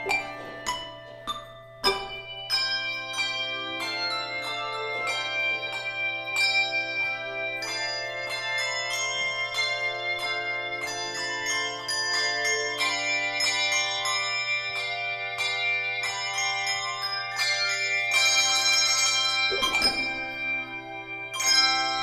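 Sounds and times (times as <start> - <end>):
handbell choir playing: 0.0 - 22.0.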